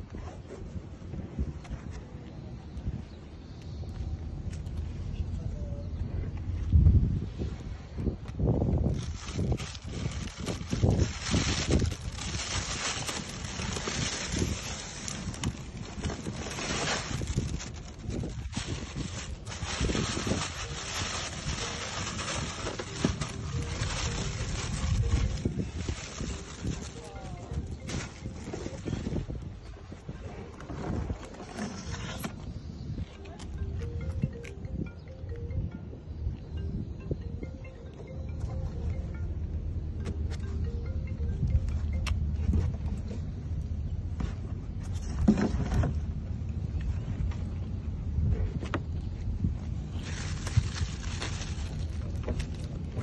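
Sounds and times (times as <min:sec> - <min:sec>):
wind rumble on microphone: 0:00.0 - 0:53.0
plastic bags rustling: 0:08.8 - 0:29.4, 0:49.9 - 0:52.9
people talking: 0:26.6 - 0:29.2, 0:33.1 - 0:34.4.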